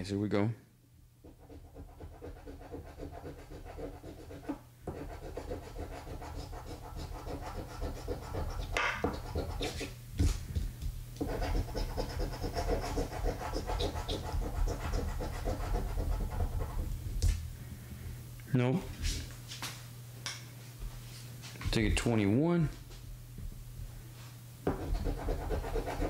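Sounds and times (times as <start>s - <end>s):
token scratching lottery ticket: 1.4s - 9.9s, 11.3s - 16.8s.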